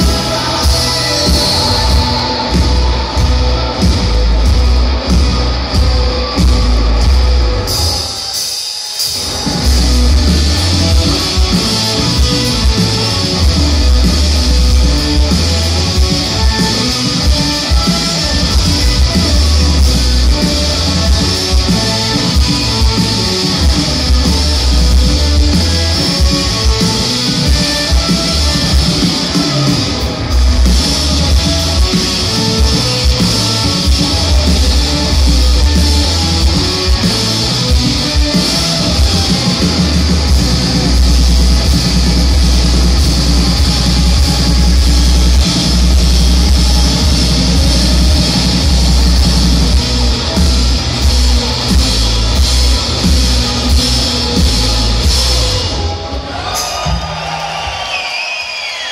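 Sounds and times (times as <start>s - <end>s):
rock band playing live: 0.0s - 58.9s.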